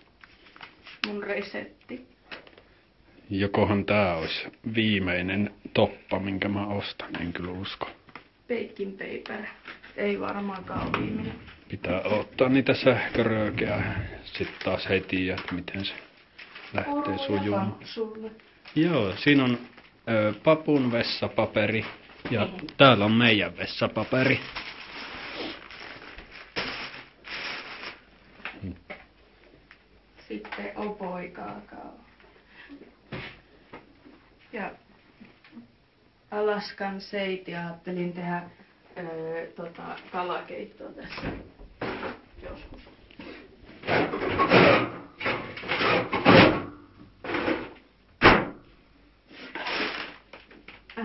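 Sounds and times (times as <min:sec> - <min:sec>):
packaging rustling: 0:11.5 - 0:17.8, 0:21.5 - 0:28.1, 0:49.4 - 0:50.8
plastic wrapping crinkling: 0:11.5 - 0:28.6, 0:49.3 - 0:51.0.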